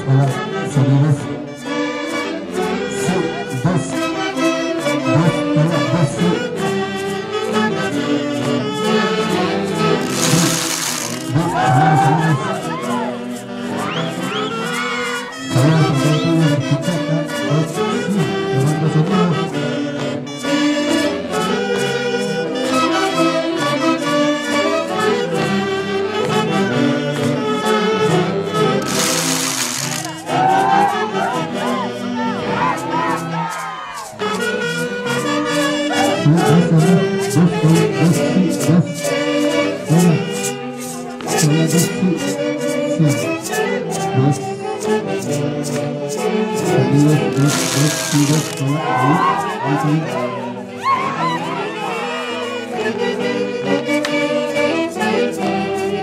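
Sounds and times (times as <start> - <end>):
brass band playing dance tune: 9.8 - 11.7, 28.6 - 31.3, 47.2 - 49.5
loud noisy burst: 10.0 - 11.4, 28.8 - 30.3, 47.4 - 48.6
percussion beat: 10.0 - 11.7, 28.8 - 30.6, 47.0 - 49.0.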